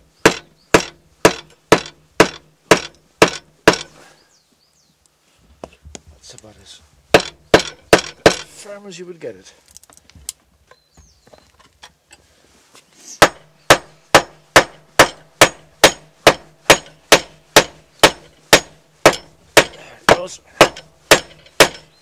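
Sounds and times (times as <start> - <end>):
hammer blows on hard object: 13.1 - 22.0.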